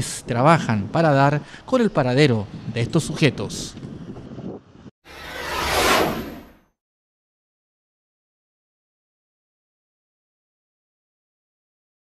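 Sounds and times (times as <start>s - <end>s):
transition whoosh: 5.1s - 6.7s.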